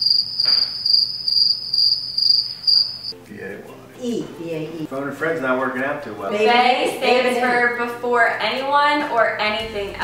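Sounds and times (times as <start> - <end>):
crickets chirping: 0.0 - 3.2.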